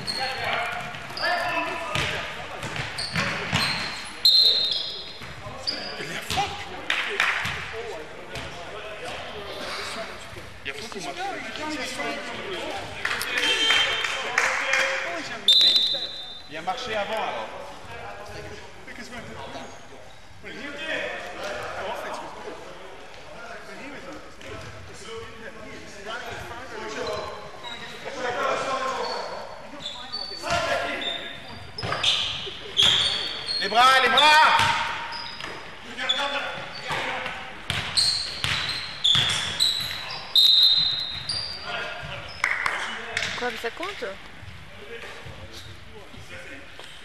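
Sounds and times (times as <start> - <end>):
sneaker squeaks: 0.0 - 6.6, 15.4 - 16.7, 19.3 - 20.2, 26.8 - 42.6
basketball bouncing on floor: 1.9 - 3.7, 37.7 - 39.5.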